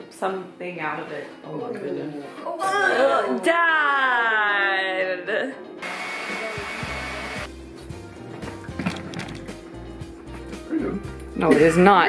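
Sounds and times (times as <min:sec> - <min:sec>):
background music with steady beat: 0:05.1 - 0:12.0
blender running with high whine: 0:05.8 - 0:07.5.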